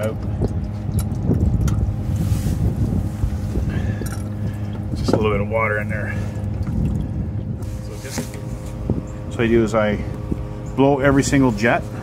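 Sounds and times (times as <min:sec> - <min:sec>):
low hum: 0:00.0 - 0:12.0
wind on microphone: 0:00.0 - 0:12.0.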